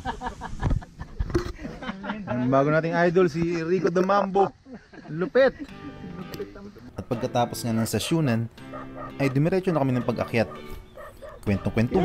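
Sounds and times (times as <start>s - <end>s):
background music: 5.5s - 12.0s
man narrating: 6.9s - 8.5s, 9.1s - 10.6s, 11.4s - 12.0s.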